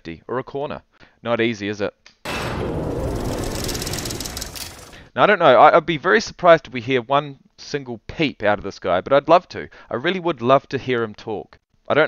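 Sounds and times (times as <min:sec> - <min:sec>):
whoosh sound effect with low rumble: 0:02.3 - 0:05.1.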